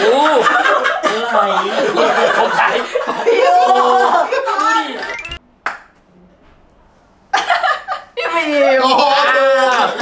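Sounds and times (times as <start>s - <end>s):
rising pitched sweep: 5.0s - 5.4s.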